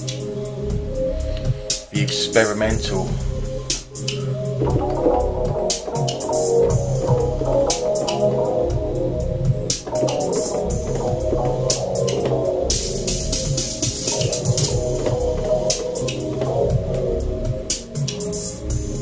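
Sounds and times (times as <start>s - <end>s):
electronic drum beat: 0.0s - 19.0s
synthesizer keyboard notes: 0.0s - 19.0s
bass line: 0.6s - 3.9s, 4.6s - 17.7s.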